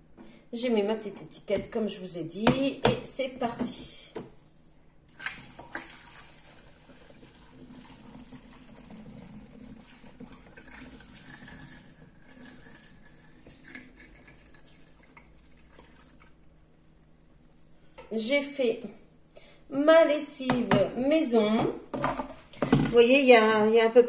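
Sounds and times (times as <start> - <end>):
liquid pouring into bottle: 5.1 - 16.4.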